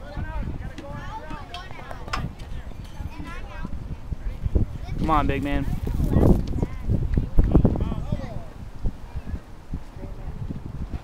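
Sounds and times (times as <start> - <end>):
indistinct chatter of voices: 0.0 - 10.6.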